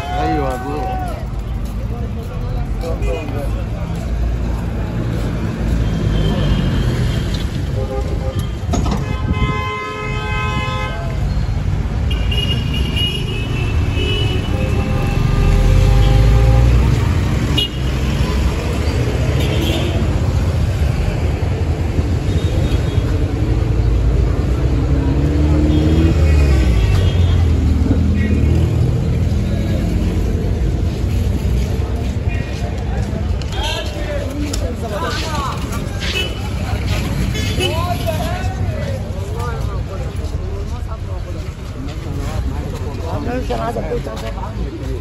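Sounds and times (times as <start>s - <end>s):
vehicle horns honking: 7.7s - 11.2s, 12.1s - 16.7s, 17.5s - 17.9s, 37.3s - 38.0s.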